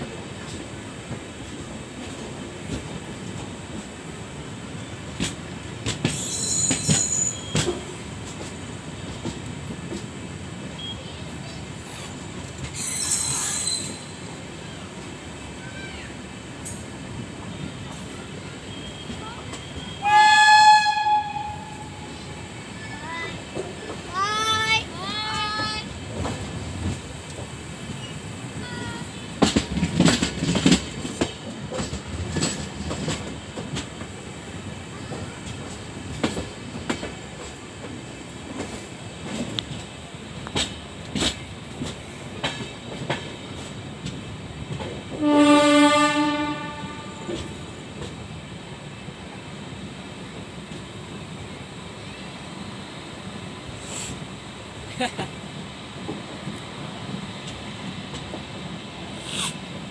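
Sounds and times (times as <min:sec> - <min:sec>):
train wheels clicking over rail joints: 0:05.1 - 0:10.6, 0:11.8 - 0:14.1, 0:23.2 - 0:45.9
locomotive horn honking: 0:20.0 - 0:22.0, 0:45.2 - 0:47.4.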